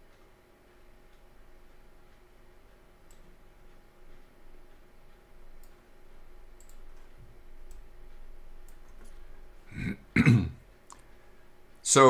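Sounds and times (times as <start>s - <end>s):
faint clicks: 0.0s - 9.3s, 10.7s - 11.2s
man clearing his throat: 9.7s - 10.6s.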